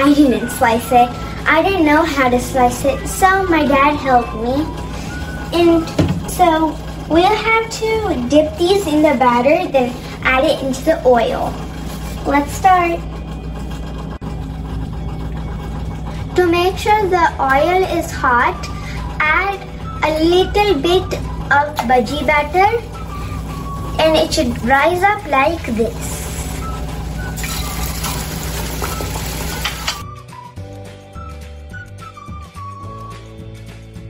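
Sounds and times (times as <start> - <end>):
held low tones: 0.0 - 30.0
low mechanical hum: 0.0 - 30.5
food frying in oil: 27.4 - 30.0.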